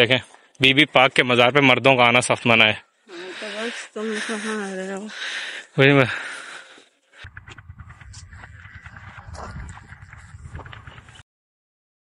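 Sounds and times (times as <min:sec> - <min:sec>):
footsteps on stony ground: 0:06.6 - 0:11.2
wind rumble on microphone: 0:07.2 - 0:11.2.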